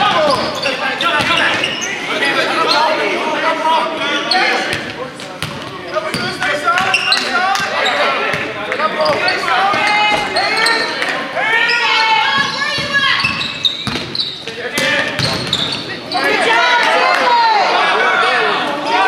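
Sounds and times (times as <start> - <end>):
sneakers squeaking: 0.0 - 3.1, 4.2 - 16.7
voices calling out: 0.0 - 19.0
basketball bouncing on hardwood: 12.4 - 14.2.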